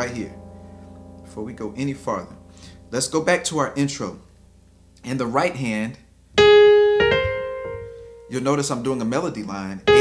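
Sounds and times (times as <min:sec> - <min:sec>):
piano notes: 0:00.0 - 0:10.0.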